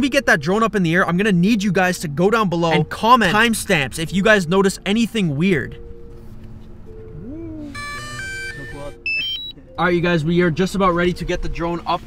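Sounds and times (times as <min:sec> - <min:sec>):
bright electronic notes: 0:07.7 - 0:09.6
high beeps: 0:07.8 - 0:09.6.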